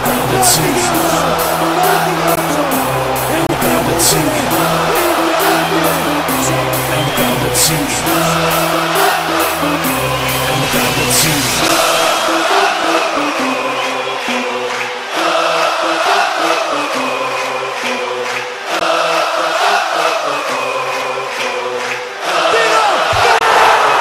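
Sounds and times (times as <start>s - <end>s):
crowd chanting: 0.0s - 24.0s
music: 0.0s - 24.0s.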